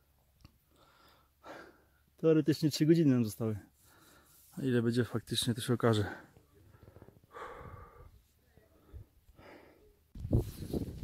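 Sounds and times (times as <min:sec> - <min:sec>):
heavy breathing: 0:06.0 - 0:10.1
tired exhale: 0:06.8 - 0:08.2.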